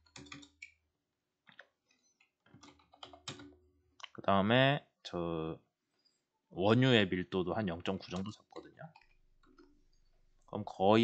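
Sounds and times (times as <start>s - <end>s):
faint keyboard typing: 0.0s - 0.7s, 1.5s - 3.6s, 7.9s - 10.1s.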